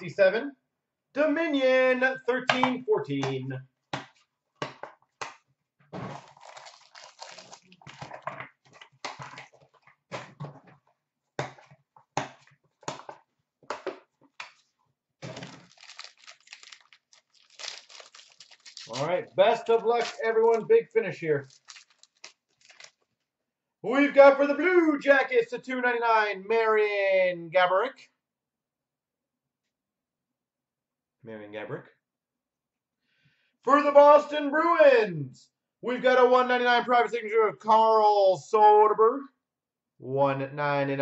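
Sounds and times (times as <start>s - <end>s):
wrapper crinkling: 6.1s - 9.9s, 14.5s - 20.7s, 21.4s - 23.1s.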